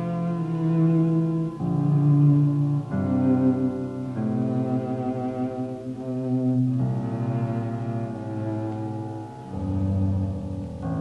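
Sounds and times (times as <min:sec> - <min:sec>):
piano trio chamber music: 0:00.0 - 0:11.0.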